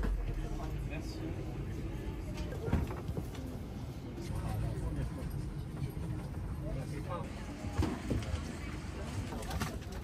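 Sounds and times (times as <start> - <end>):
airliner cabin rumble: 0.0 - 10.0.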